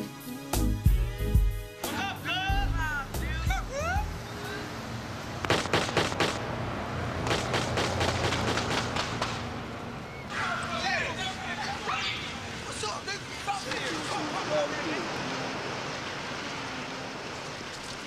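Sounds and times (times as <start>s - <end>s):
voices calling out: 1.8s - 5.4s, 9.4s - 18.0s
gunshots: 5.4s - 6.5s, 7.2s - 9.6s.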